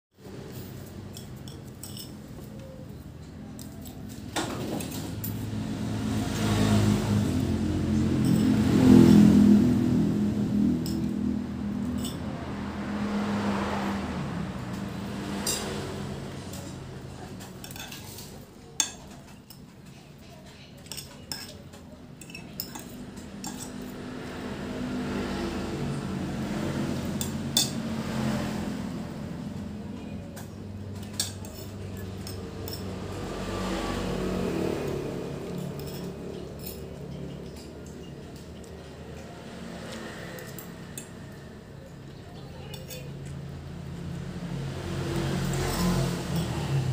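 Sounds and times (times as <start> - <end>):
vehicle engine passing by: 0.2 - 20.2, 20.8 - 46.9
cutlery clinking on a plate: 1.1 - 2.8, 15.3 - 15.9, 16.6 - 23.9.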